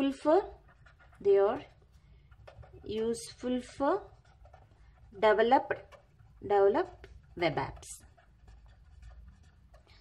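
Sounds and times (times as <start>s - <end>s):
pen scratching on paper: 0.0s - 10.0s.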